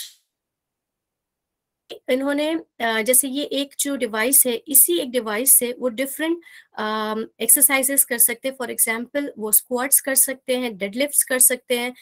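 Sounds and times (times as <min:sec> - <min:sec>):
woman speaking: 0:01.9 - 0:12.0.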